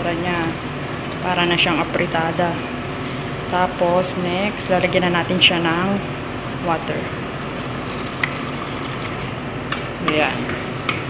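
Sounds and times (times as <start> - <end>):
water pouring into a pot: 6.0 - 9.3.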